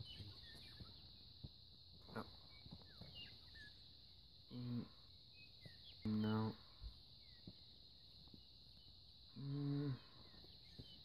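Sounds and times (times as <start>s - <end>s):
bird chirps: 0.0s - 4.2s, 5.1s - 11.0s
high insect drone: 0.0s - 11.0s.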